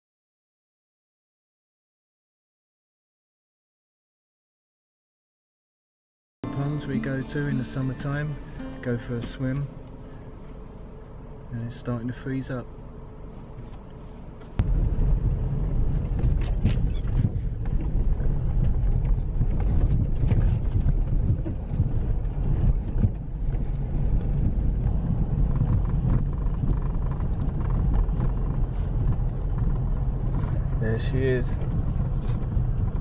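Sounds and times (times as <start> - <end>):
tyres and engine rumbling: 6.4 - 33.0.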